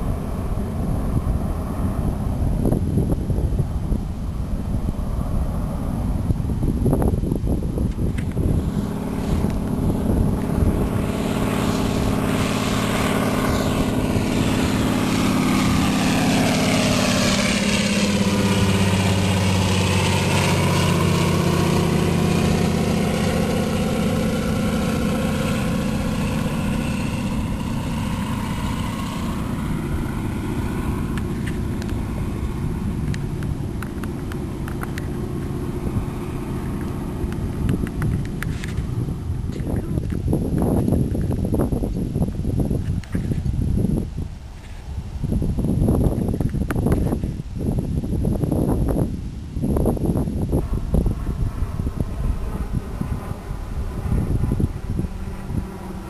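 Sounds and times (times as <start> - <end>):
propeller plane engine drone: 0.0 - 56.0.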